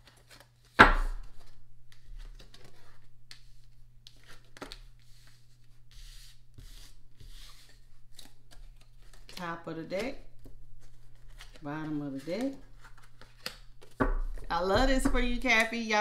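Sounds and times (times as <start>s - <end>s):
cards clicking and rustling: 0.0s - 5.8s, 6.8s - 14.5s.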